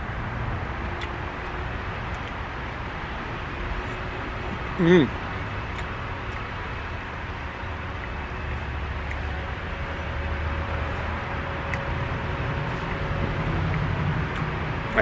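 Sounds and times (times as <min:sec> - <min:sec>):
distant road traffic rumble: 0:00.0 - 0:15.0.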